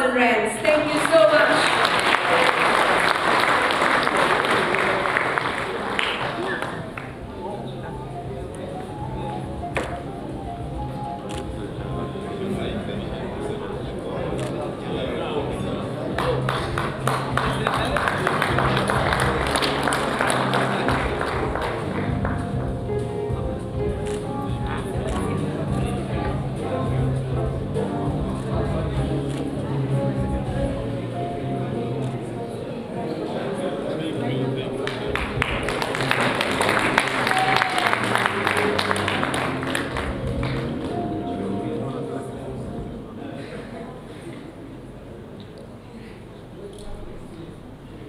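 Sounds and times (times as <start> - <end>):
background music: 0.0 - 44.1
murmur of voices: 0.0 - 48.0
audience applauding: 0.7 - 7.4, 16.0 - 22.8, 34.8 - 41.0
scattered hand claps: 0.9 - 7.2, 16.1 - 22.8, 23.9 - 24.3, 25.0 - 26.4, 34.8 - 41.0.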